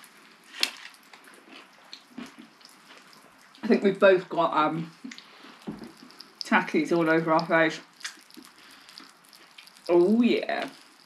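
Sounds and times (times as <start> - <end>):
wet chewing: 0.0 - 11.0.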